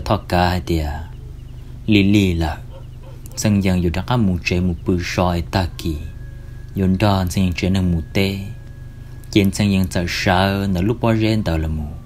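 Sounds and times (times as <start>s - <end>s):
drawn-out syllable with wavering pitch: 0.0s - 12.0s.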